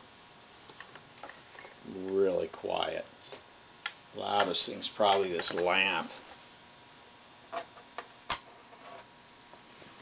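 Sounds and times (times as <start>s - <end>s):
amplifier hiss: 0.0s - 10.0s
high whine from lamp: 0.0s - 10.0s.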